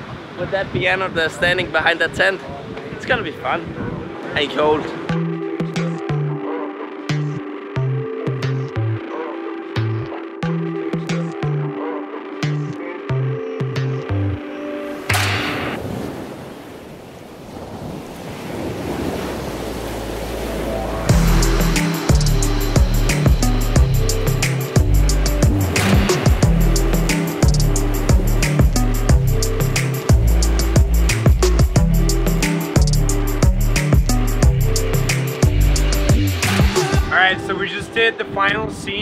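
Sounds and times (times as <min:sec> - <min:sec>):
rushing wash of noise: 0:14.7 - 0:33.6
electronic dance music: 0:21.0 - 0:37.4.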